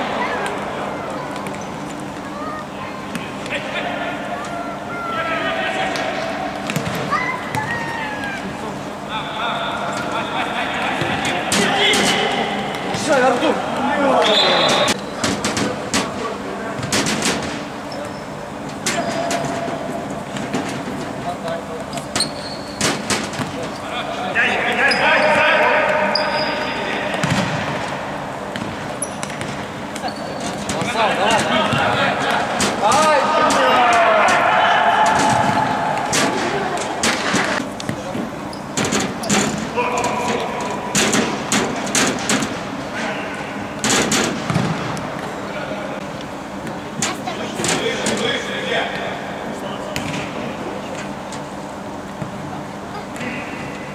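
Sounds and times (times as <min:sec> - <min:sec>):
voices shouting: 0:03.5 - 0:12.8, 0:32.8 - 0:37.0
ball kicked and bouncing on court: 0:44.4 - 0:45.3.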